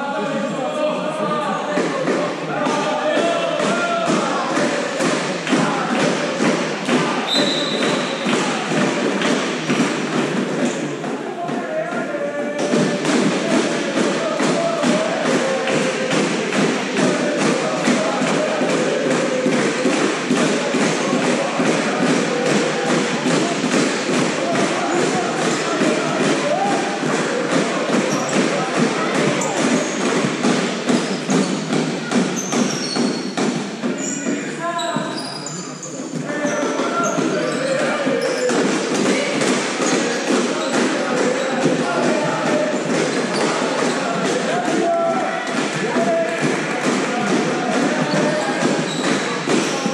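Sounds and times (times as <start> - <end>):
players shouting: 0.8 - 35.4, 36.1 - 49.9
ball bouncing on hall floor: 1.7 - 49.9.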